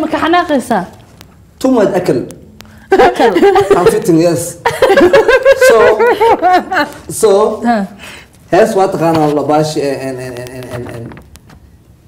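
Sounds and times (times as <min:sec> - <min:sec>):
woman talking: 0:00.0 - 0:01.0, 0:02.9 - 0:03.8
woman laughing: 0:02.9 - 0:07.1.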